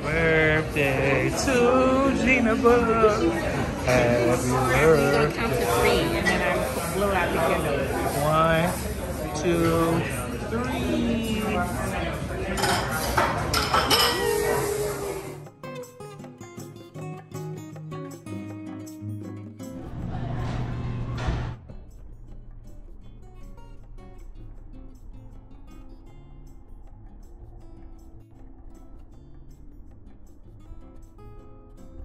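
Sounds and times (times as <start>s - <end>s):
burst of voices: 14.0s - 15.4s.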